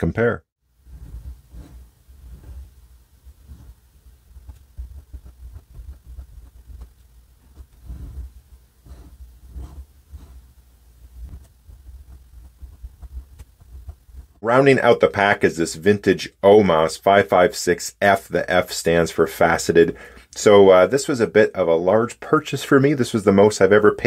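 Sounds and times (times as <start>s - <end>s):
low steady rumble: 0.6s - 14.5s
pen nib scratching paper: 0.8s - 10.5s.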